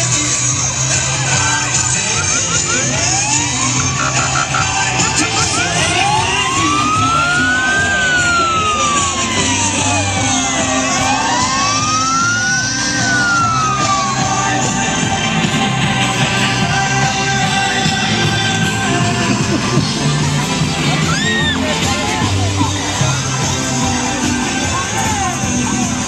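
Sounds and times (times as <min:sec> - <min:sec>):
loud parade music: 0:00.0 - 0:26.0
siren chirps: 0:01.3 - 0:17.2
siren wailing: 0:01.3 - 0:19.1.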